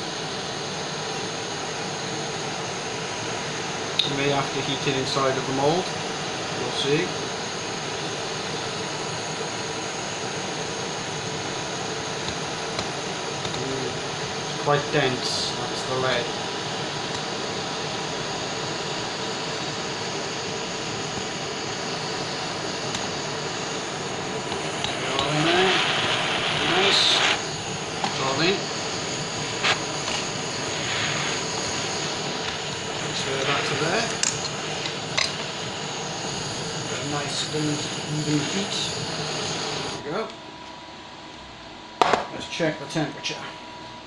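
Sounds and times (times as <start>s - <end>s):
blowtorch flame hissing: 0.0s - 40.3s.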